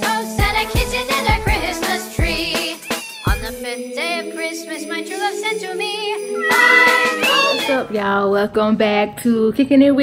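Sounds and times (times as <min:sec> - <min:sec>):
christmas music: 0:00.1 - 0:08.2
cat meowing: 0:02.8 - 0:03.4, 0:06.4 - 0:07.8.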